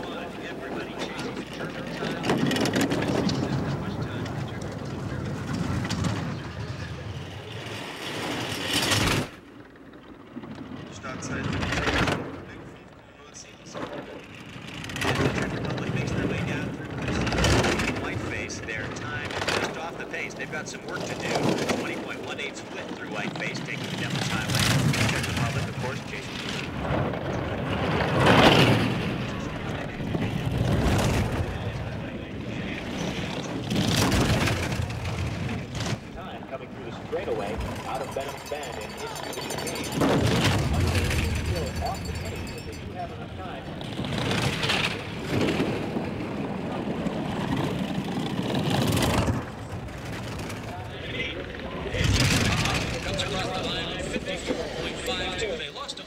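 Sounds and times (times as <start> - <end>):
bobsleigh runners rumbling on ice: 0.0 - 56.0.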